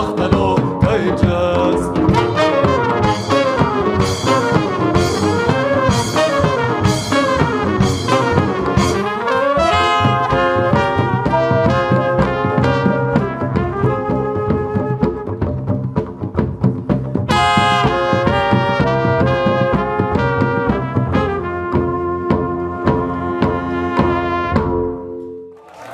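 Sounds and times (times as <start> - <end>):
band with brass horns: 0.0 - 25.9.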